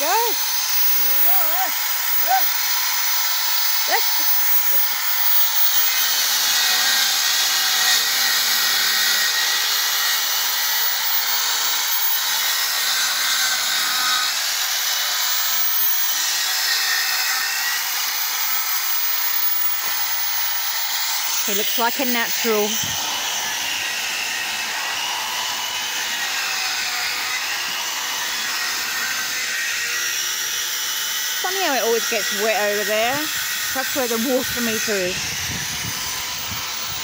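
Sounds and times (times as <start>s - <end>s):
circular saw running: 0.0s - 37.0s
saw cutting timber: 0.0s - 37.0s.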